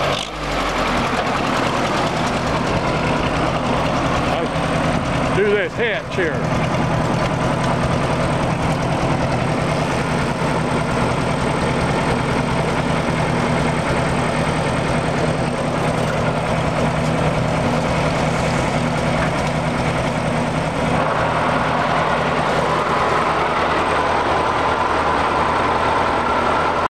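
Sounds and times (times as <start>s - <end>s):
tractor engine idling: 0.0s - 26.9s.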